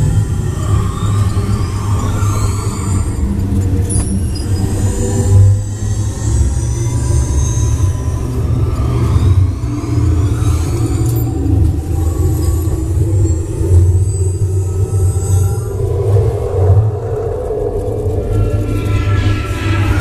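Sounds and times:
ride vehicle rumbling on track: 0.0 - 20.0.

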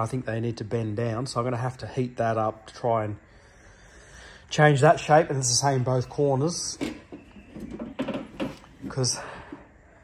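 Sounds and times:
plastic rustling and knocks: 6.8 - 9.1.

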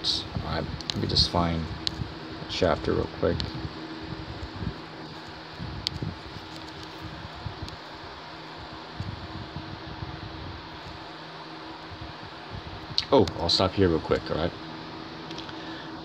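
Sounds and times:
steady hum and hiss: 0.0 - 16.0.

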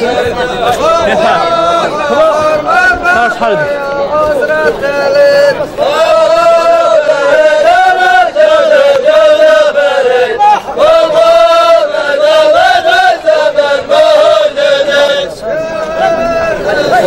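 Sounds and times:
men chanting in unison: 0.0 - 17.0.

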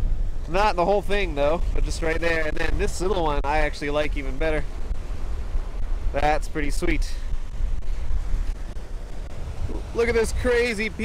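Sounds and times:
wind buffeting microphone: 0.0 - 11.0
surf washing onto pebble beach: 0.5 - 11.0.

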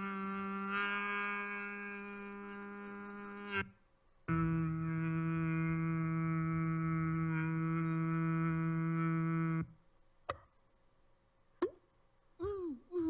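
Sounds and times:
held low note: 4.3 - 9.8.

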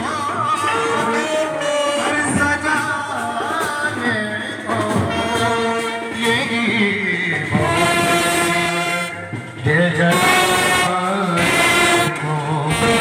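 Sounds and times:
brass band playing: 0.0 - 13.0.

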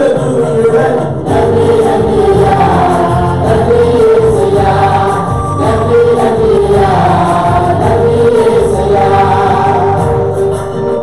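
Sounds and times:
group singing praise song: 0.0 - 10.7.

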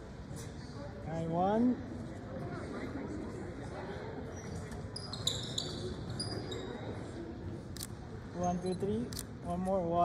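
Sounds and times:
murmur in a large gym: 0.0 - 10.0
sneakers squeaking on court: 4.4 - 6.8.

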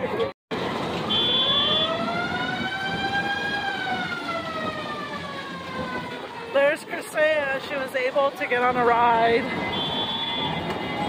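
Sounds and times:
siren wailing: 0.6 - 6.8, 9.2 - 11.0
short high beep: 9.6 - 11.0.

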